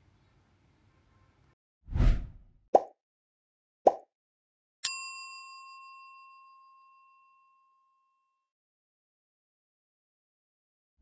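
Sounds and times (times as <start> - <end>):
bright bell ding: 4.8 - 8.0.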